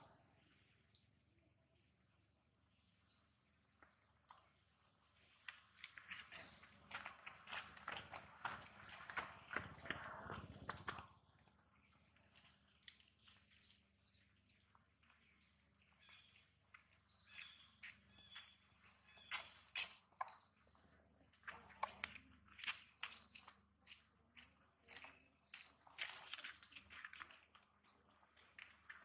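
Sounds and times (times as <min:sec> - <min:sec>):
birds chirping: 0:00.0 - 0:29.0.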